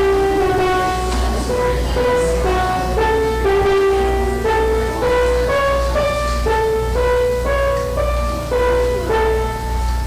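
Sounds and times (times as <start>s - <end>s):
slow sustained keyboard chords: 0.0s - 10.0s.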